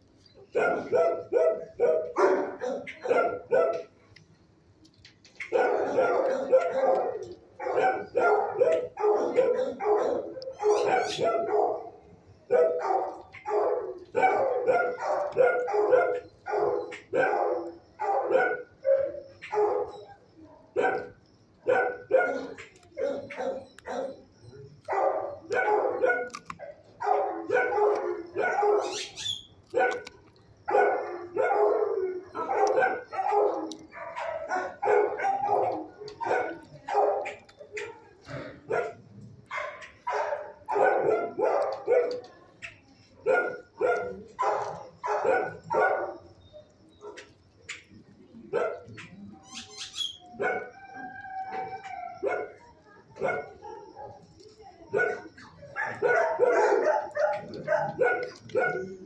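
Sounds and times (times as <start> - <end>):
dogs barking: 0.4 - 4.0, 5.3 - 59.0.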